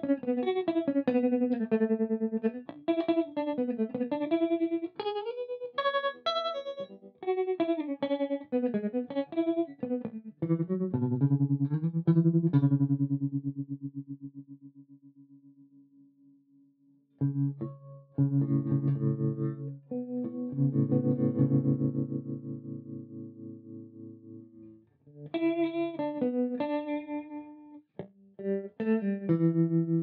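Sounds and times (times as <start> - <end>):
electric guitar with tremolo: 0.0 - 16.0, 17.2 - 30.0.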